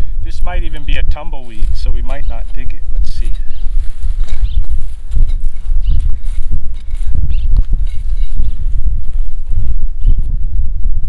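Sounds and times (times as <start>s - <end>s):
wind buffeting microphone: 0.0s - 11.0s
digging tool scraping dry soil: 1.4s - 9.3s.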